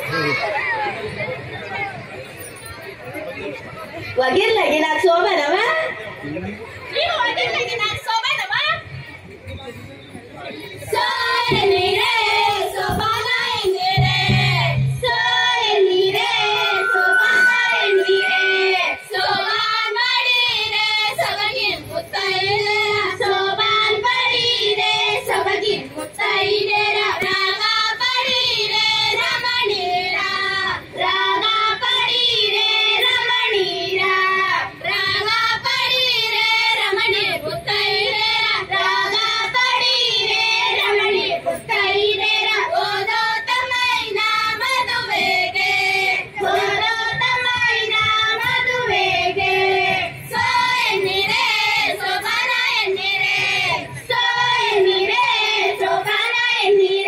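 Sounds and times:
women singing folk song: 10.9 - 57.0.

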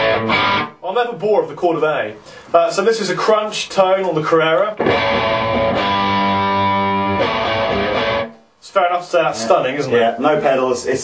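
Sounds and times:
electric guitar chord strummed: 0.0 - 0.7, 4.8 - 8.4.

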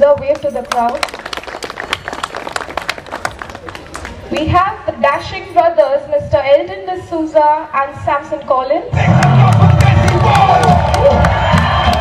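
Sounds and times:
hands clapping: 0.1 - 4.5, 9.1 - 12.0.

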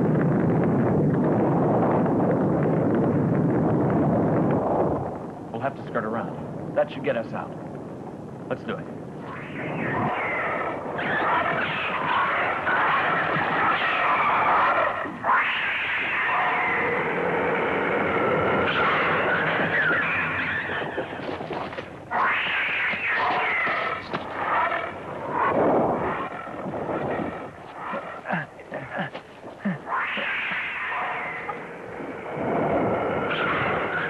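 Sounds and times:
monster roars and screeches: 9.3 - 21.2, 22.1 - 28.5, 29.7 - 34.0.

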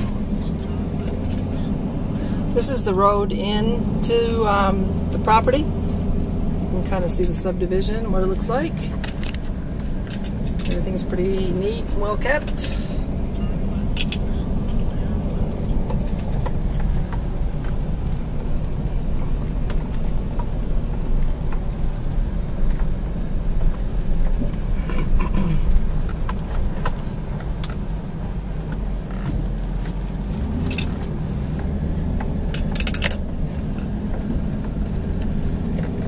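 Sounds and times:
car engine and tyre rumble: 0.0 - 36.0
light clicks and rattles: 6.1 - 14.7.

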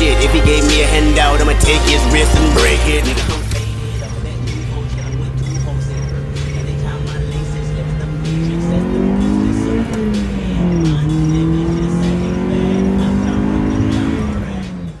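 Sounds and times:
car engine accelerating: 0.0 - 15.0.

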